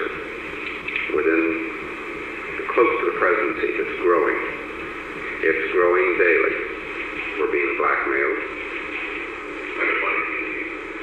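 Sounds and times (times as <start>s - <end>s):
man's voice on old tape: 0.0s - 11.0s.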